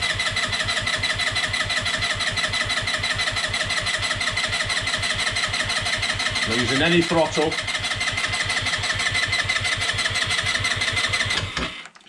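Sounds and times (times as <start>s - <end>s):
electric starter cranking engine: 0.0s - 12.0s.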